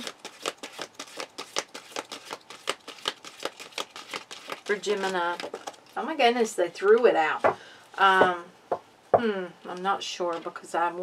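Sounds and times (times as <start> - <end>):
cards being shuffled: 0.0 - 6.0.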